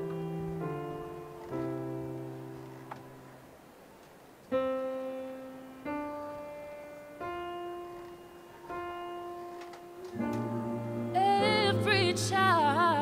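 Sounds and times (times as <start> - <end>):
slow piano notes: 0.0 - 13.0.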